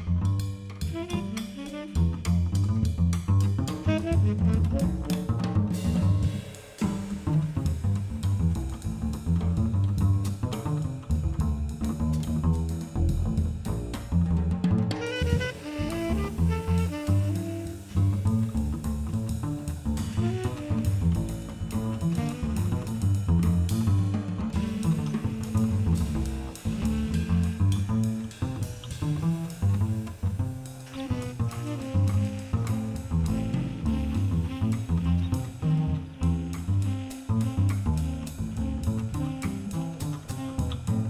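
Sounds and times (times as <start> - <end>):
double bass plucked: 0.0 - 41.0
drum kit and cymbals: 0.0 - 41.0.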